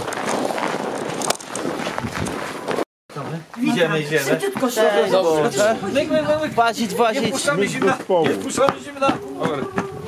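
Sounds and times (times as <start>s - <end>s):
footsteps crunching on snow: 0.0s - 3.4s.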